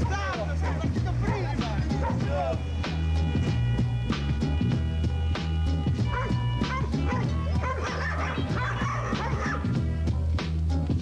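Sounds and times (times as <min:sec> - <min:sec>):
dog barking and yipping: 0:00.0 - 0:02.4, 0:06.1 - 0:09.8
music with steady beat: 0:00.0 - 0:11.0.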